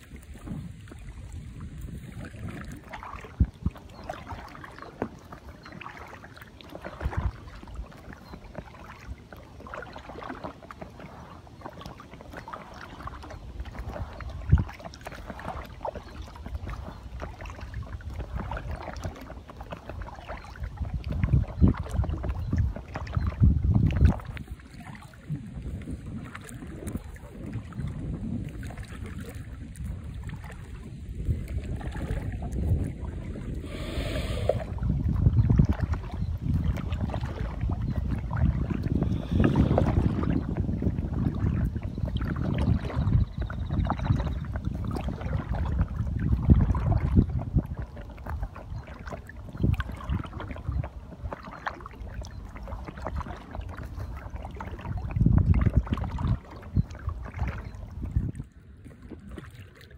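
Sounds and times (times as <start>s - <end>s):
waves lapping against kayak hull: 0.0s - 59.9s
wind on microphone: 0.0s - 59.9s.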